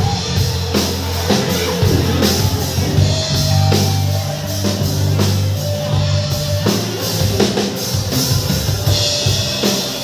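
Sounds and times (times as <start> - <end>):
bass guitar: 0.0 - 10.0
drum kit beating: 0.0 - 10.0
electric guitar: 0.0 - 10.0.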